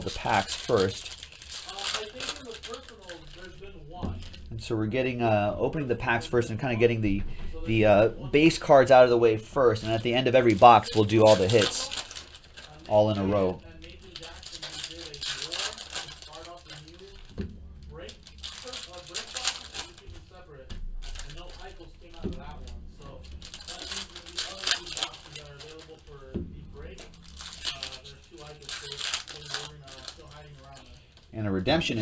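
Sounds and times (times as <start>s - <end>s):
foil wrappers crinkling and tearing: 0.0s - 5.0s, 8.4s - 32.0s.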